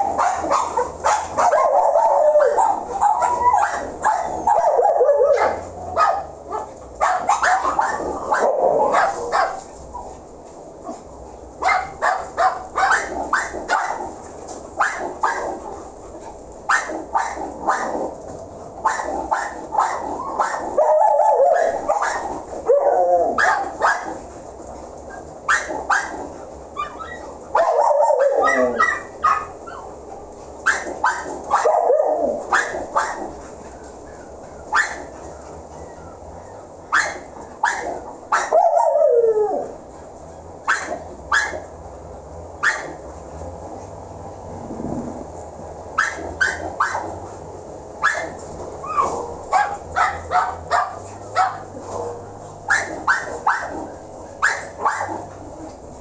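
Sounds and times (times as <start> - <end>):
dogs barking: 0.0 - 9.7, 10.8 - 24.3, 25.1 - 41.8, 42.6 - 43.1, 45.9 - 55.8
dog whining: 0.2 - 5.7, 26.8 - 30.0, 35.7 - 39.8, 48.0 - 50.9.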